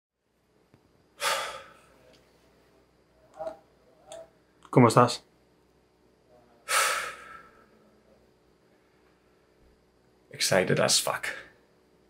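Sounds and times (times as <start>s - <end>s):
man exhaling loudly: 1.2s - 1.8s, 6.6s - 7.6s.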